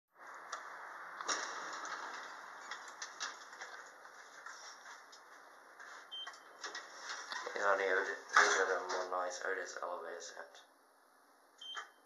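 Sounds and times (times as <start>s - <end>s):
elevator doors sliding open: 1.2s - 3.9s.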